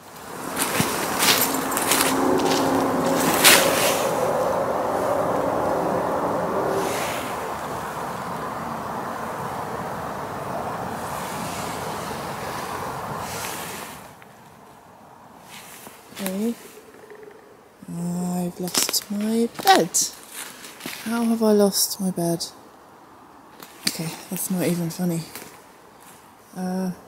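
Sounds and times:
low pitched grinding: 0.0s - 8.6s, 15.9s - 19.4s.

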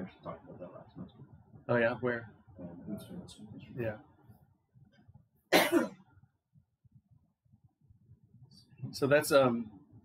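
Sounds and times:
man coughing: 5.5s - 6.0s.

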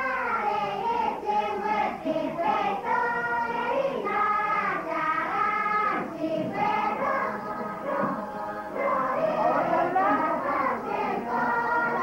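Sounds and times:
choir singing sustained notes: 0.0s - 12.0s.

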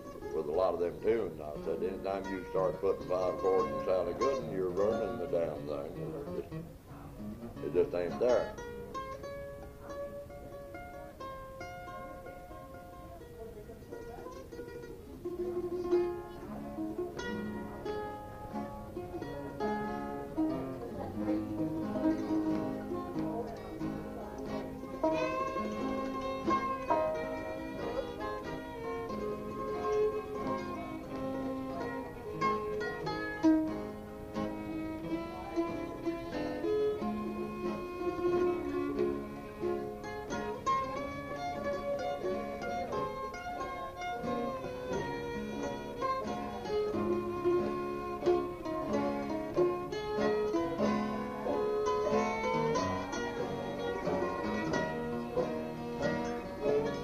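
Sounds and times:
fiddle tune: 0.0s - 57.0s
guitar backing: 0.0s - 57.0s.

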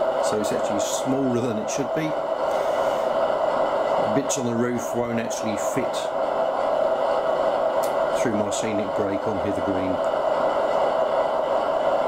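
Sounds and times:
model locomotive diesel engine hum: 0.0s - 12.0s.

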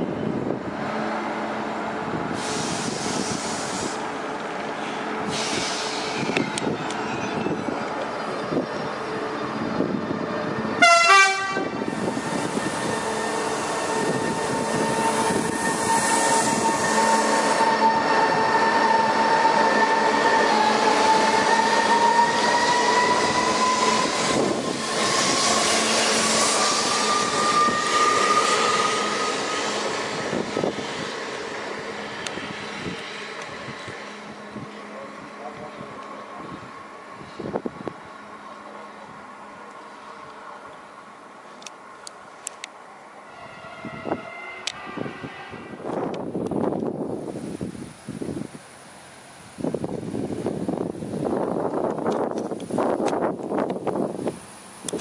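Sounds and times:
electric train traction whine: 5.3s - 38.8s
train horn blast: 10.8s - 11.9s, 43.2s - 45.9s.

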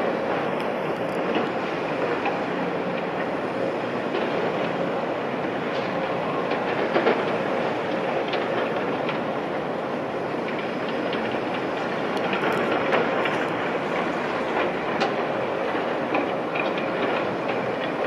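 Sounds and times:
excavator engine and hydraulics: 0.0s - 18.0s.

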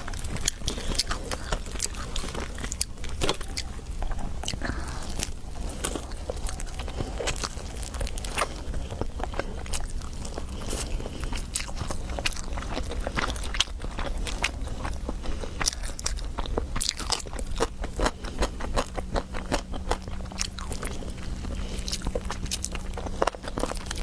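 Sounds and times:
crunchy biting and chewing: 0.0s - 24.0s
low steady hum: 0.0s - 24.0s.

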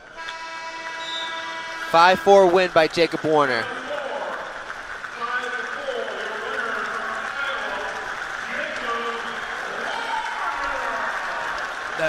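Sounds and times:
buzzy arena horn: 0.0s - 7.8s.

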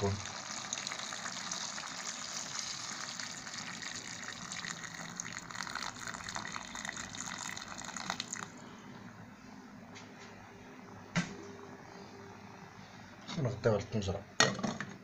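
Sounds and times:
water pouring into a pot: 0.0s - 8.6s.

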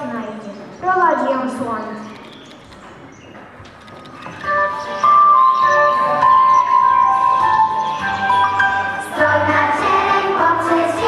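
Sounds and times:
bright instrumental melody: 4.4s - 11.0s.

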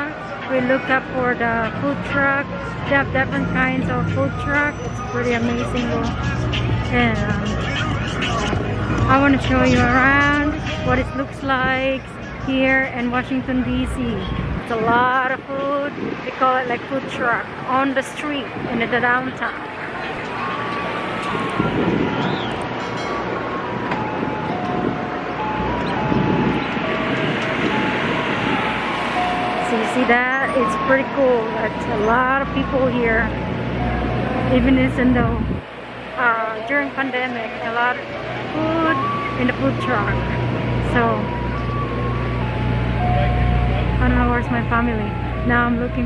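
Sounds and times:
engines idling hum: 0.0s - 15.8s
outdoor street noise: 0.0s - 46.0s.

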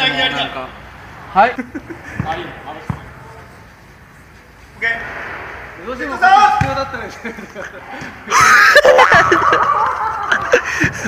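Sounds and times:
ball bouncing on turf: 2.1s - 3.4s, 6.5s - 7.0s.

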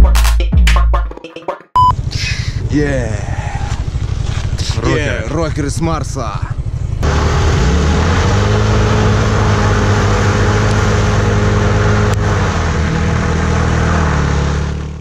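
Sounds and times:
scooter engines revving high: 1.9s - 15.0s
wheels spinning in dirt: 2.0s - 5.8s, 6.4s - 15.0s.

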